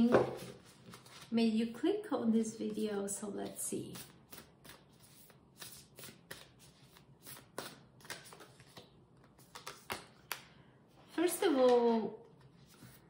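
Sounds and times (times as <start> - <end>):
cards being shuffled: 0.2 - 1.3, 3.4 - 10.5.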